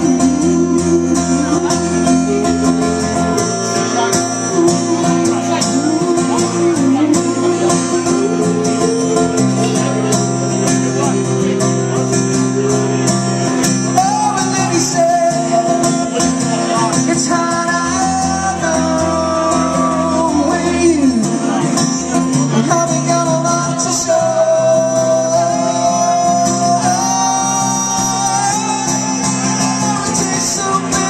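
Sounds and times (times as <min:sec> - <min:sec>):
acoustic guitar strumming: 0:00.0 - 0:31.0.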